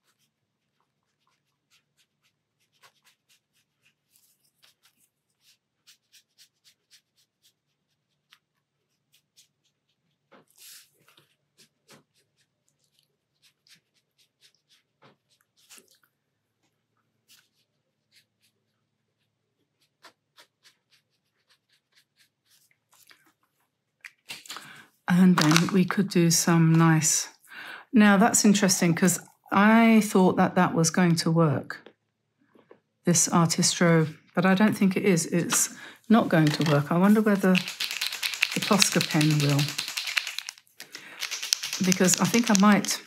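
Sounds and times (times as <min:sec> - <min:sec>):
pen scratching on paper: 0:00.0 - 0:10.2, 0:19.7 - 0:22.6, 0:36.1 - 0:43.0.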